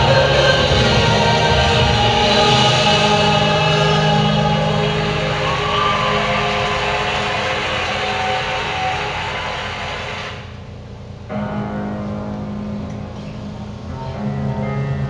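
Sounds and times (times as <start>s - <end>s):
choir singing held notes: 0.0s - 10.6s.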